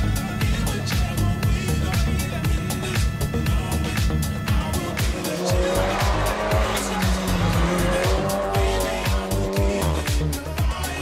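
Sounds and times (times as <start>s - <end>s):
music with steady beat: 0.0s - 11.0s
race car engine revving: 0.0s - 11.0s.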